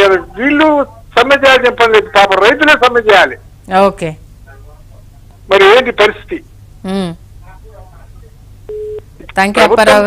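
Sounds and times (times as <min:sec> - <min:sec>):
telephone line beep: 0:08.7 - 0:09.1.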